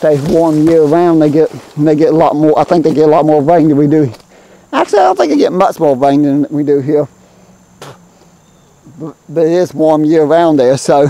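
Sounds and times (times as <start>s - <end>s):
footstep snapping dry brush: 0.0s - 2.1s, 4.0s - 4.4s, 7.8s - 8.4s
insects chirring: 0.0s - 11.0s.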